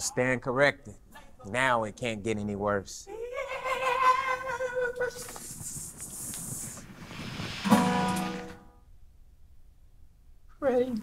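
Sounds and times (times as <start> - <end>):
acoustic guitar strumming: 7.6 - 8.8.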